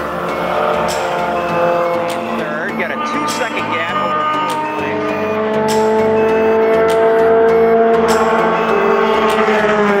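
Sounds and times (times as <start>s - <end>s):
race car engine at high revs: 0.0s - 10.0s.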